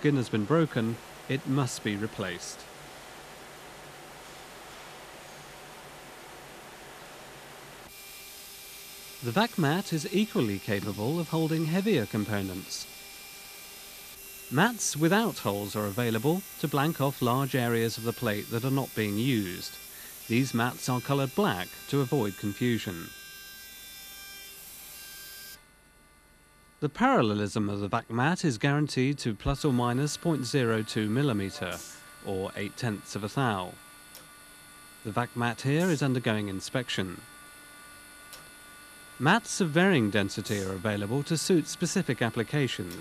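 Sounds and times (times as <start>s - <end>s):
milling spindle high whine: 0.0s - 23.3s, 27.2s - 43.0s
faint background hum: 0.0s - 43.0s.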